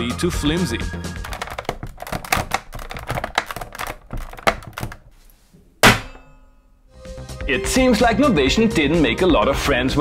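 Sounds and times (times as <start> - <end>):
plastic casing creaking: 1.2 - 5.1
hand thumping on keys: 1.2 - 5.2.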